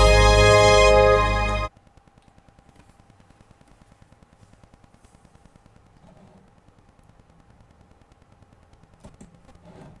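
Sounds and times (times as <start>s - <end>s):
low room hum: 0.0s - 10.0s.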